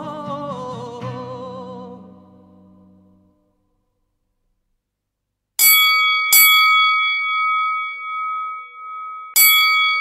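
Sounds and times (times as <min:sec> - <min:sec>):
bell chime ringing: 0:05.6 - 0:10.0.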